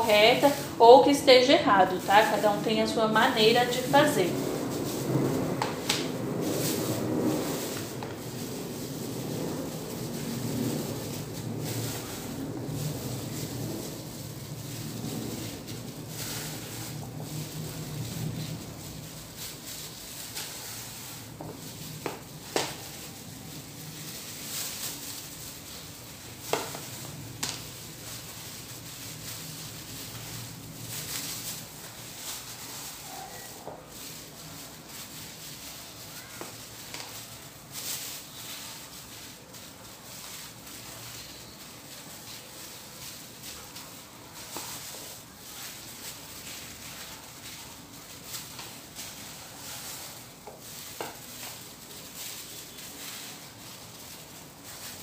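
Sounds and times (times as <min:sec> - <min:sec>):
plastic glove rustling: 0:00.0 - 0:55.0.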